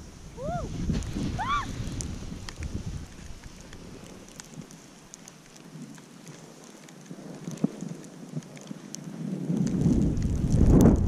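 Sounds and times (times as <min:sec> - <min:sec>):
skis hissing over packed snow: 0:00.0 - 0:11.0
wind buffeting microphone: 0:00.0 - 0:11.0.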